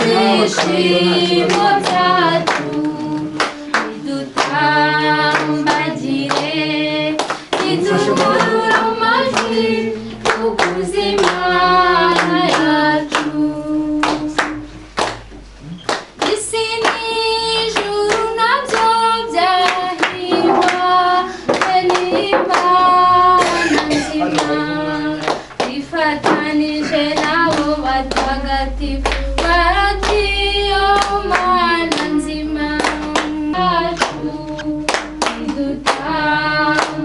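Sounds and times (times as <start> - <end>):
group of voices singing: 0.0 - 37.0
steady hand clapping: 0.0 - 37.0.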